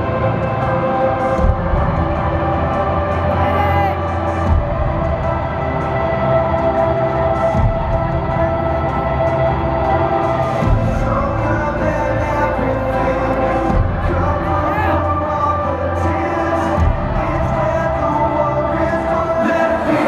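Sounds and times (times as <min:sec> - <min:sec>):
live music with held chords: 0:00.0 - 0:20.0.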